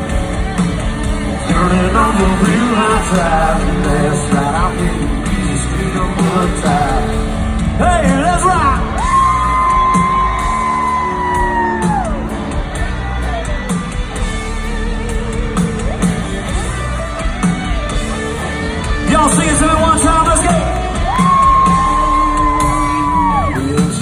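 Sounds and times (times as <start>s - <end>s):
country rock band playing: 0.0s - 24.0s
steady drum beat: 0.0s - 24.0s.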